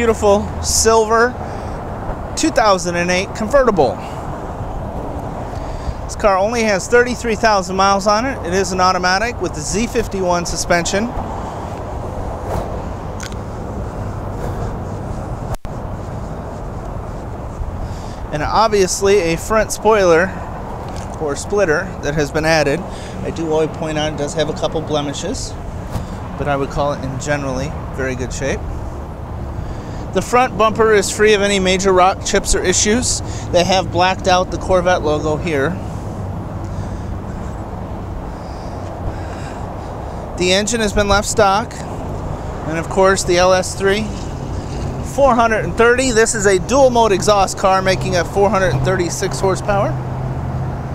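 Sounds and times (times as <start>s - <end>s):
outdoor background noise: 0.0s - 50.9s.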